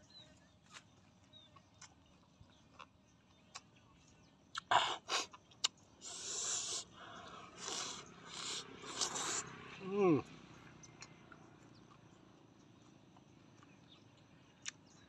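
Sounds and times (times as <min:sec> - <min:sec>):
crunching and smacking mouth noises: 0:01.6 - 0:03.8, 0:04.5 - 0:06.8, 0:07.6 - 0:09.4, 0:12.8 - 0:15.0.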